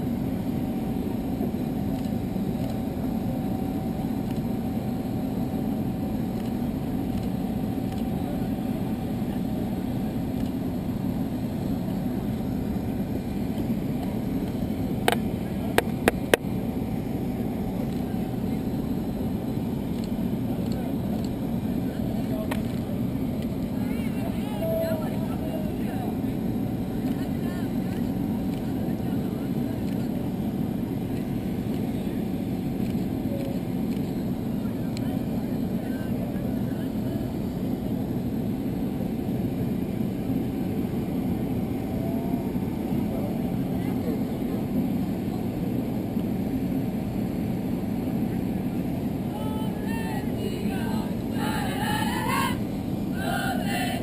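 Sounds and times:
low engine drone: 0:00.0 - 0:54.0
faint voices: 0:00.3 - 0:54.0.

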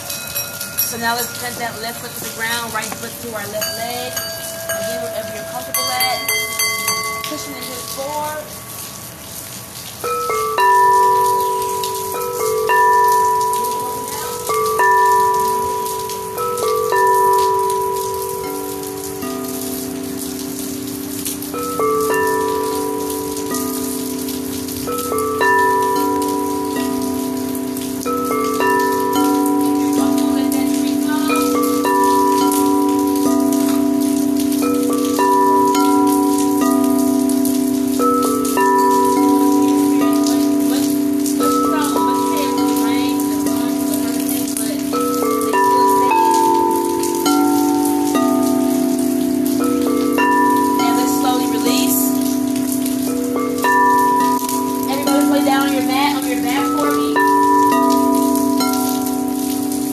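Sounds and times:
deeper bowl ringing: 0:00.0 - 0:09.4, 0:10.0 - 0:59.9
rain hiss: 0:00.0 - 0:59.9
singing bowls ringing: 0:00.0 - 0:59.9.

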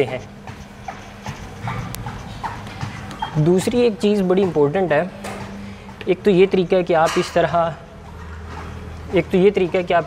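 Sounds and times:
footsteps on treadmill belt: 0:00.0 - 0:06.7, 0:08.0 - 0:10.0
treadmill humming: 0:00.0 - 0:10.0.

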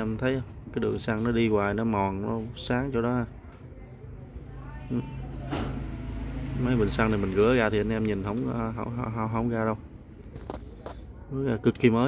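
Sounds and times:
steady low hum: 0:03.1 - 0:12.0
carburetor throttle click: 0:05.5 - 0:08.7.

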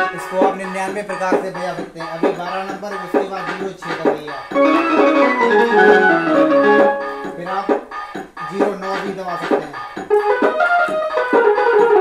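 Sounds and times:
electronic harmonium melody: 0:00.0 - 0:01.8, 0:04.5 - 0:07.4, 0:10.1 - 0:12.0.

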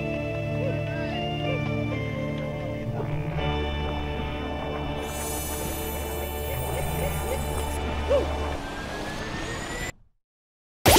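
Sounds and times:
rush with rising whistle: 0:08.0 - 0:10.1.

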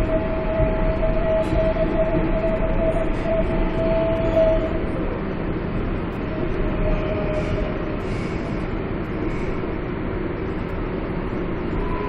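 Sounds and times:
steady whine: 0:00.0 - 0:12.0
subway train rumble and rail noise: 0:00.0 - 0:12.0.

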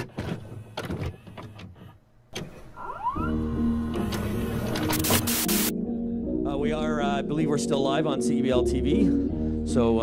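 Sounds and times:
tape mechanism clunking: 0:00.0 - 0:03.2, 0:03.9 - 0:05.5
rising tape whine: 0:02.6 - 0:05.7.

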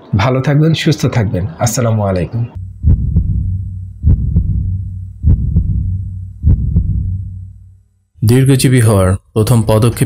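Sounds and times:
heartbeat thumps: 0:02.6 - 0:07.8.

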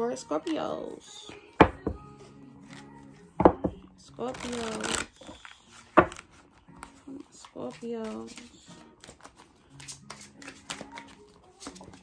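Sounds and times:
faint background music: 0:00.0 - 0:12.0
tarot cards knocking: 0:03.4 - 0:03.8, 0:05.8 - 0:06.4.

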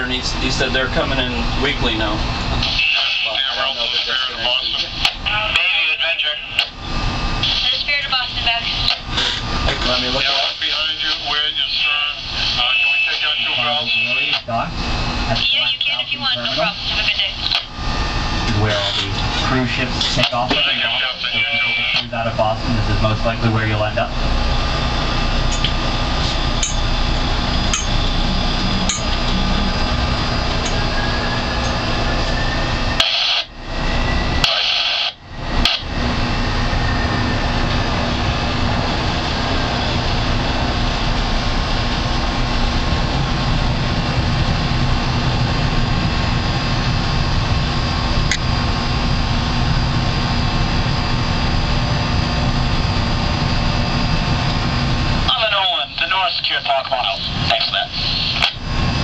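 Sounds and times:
boat engine running: 0:13.8 - 0:34.4, 0:35.2 - 0:55.8.

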